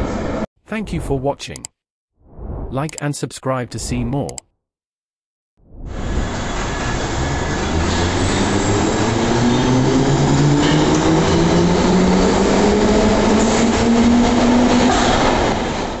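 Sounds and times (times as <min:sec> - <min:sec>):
wheels rumbling on rail: 0:05.9 - 0:16.0.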